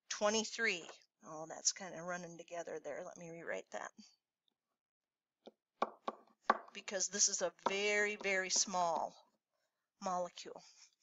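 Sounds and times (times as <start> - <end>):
stylus tapping on writing surface: 5.5 - 6.7.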